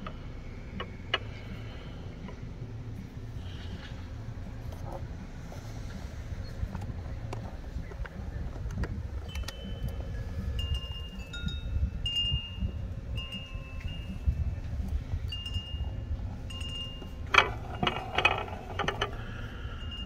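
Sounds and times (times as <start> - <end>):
steady low rumble: 0.0 - 20.0
wind chimes ringing: 9.2 - 20.0.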